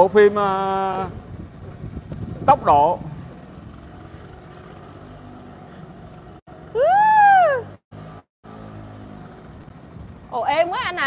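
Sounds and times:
moped engine running: 0:00.0 - 0:07.0, 0:07.8 - 0:11.0.

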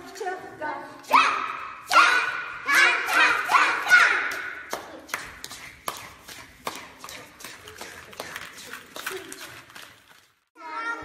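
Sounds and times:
sharp claps and taps: 0:04.2 - 0:10.0.

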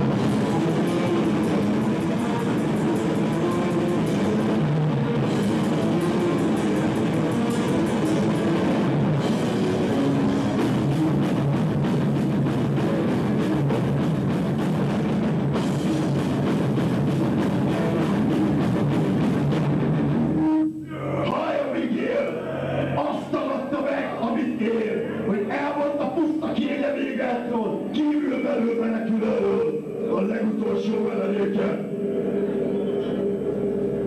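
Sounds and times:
rock band playing: 0:00.0 - 0:20.8
distorted electric guitars: 0:00.0 - 0:34.0.

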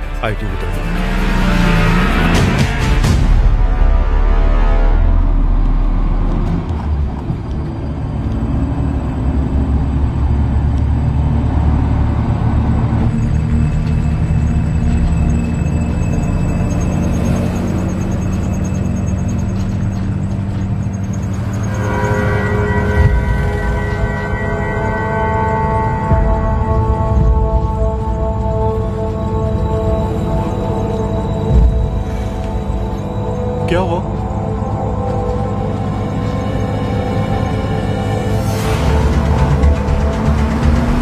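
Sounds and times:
ominous low drone: 0:00.0 - 0:41.0
bright sustained chord: 0:21.4 - 0:40.6.

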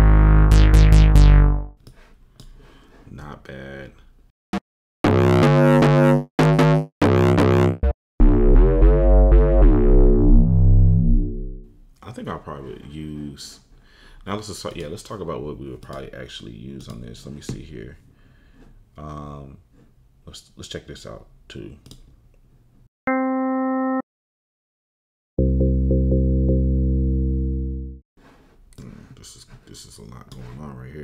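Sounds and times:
deep synth bass: 0:00.0 - 0:01.7, 0:05.0 - 0:11.8, 0:25.4 - 0:28.0.

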